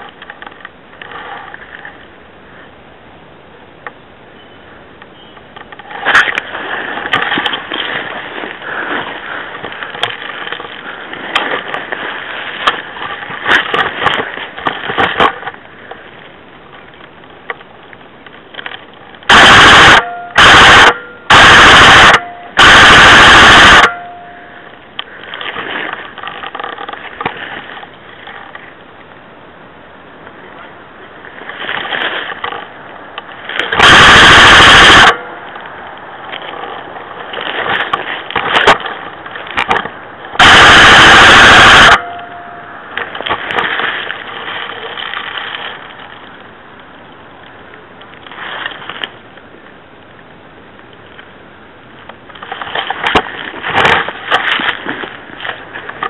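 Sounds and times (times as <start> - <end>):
rustling through brush: 4.4 - 19.4, 23.9 - 29.2, 30.0 - 49.7, 52.2 - 56.0
airsoft gun full-auto bursts: 19.3 - 23.9, 33.8 - 35.2, 40.4 - 42.0.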